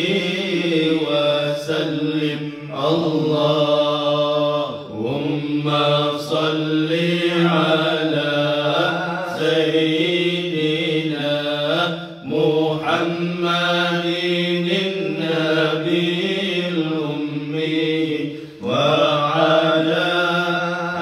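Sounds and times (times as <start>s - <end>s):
men chanting: 0.0s - 21.0s.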